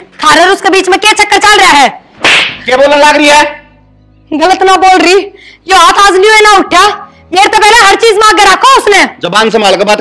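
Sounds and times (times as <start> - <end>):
slap across a face: 2.2 - 2.6.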